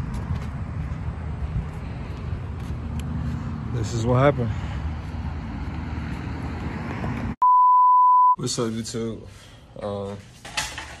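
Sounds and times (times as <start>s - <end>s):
steady test-tone beep: 7.4s - 8.4s.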